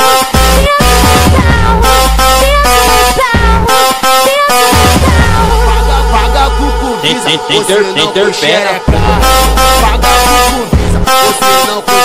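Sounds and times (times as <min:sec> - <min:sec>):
steady high tones: 0:04.6 - 0:11.8
funk track with deep bass: 0:04.7 - 0:07.1, 0:08.9 - 0:12.0.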